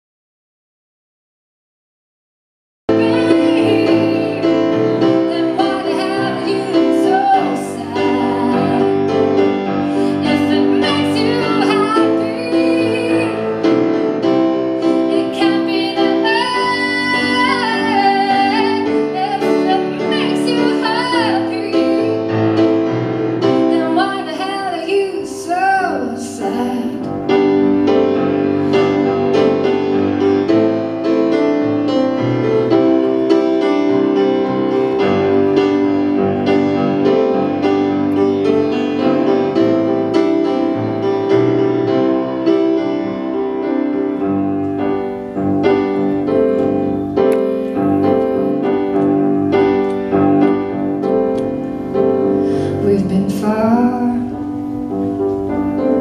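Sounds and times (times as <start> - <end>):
woman singing: 2.9 - 9.2, 10.0 - 13.7, 14.8 - 22.4, 23.4 - 27.1
solo piano chords: 2.9 - 56.0.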